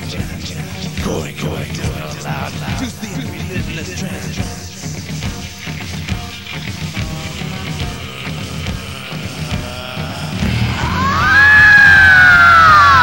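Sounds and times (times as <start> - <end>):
heavy metal band playing: 0.0 - 13.0.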